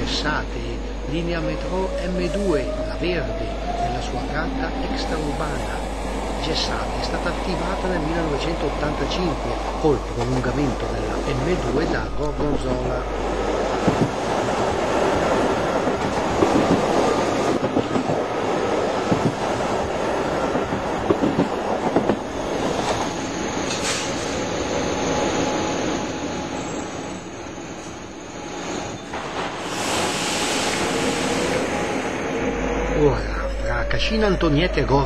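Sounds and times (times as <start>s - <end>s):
metro train running on track: 0.0s - 35.0s.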